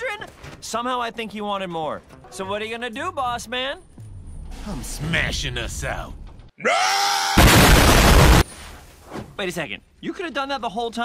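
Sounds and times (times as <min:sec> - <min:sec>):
cartoon crash of cage smashing: 0:07.3 - 0:08.5.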